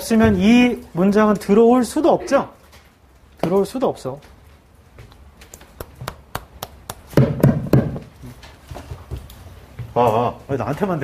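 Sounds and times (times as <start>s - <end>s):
loud dull knocks: 6.9s - 8.3s.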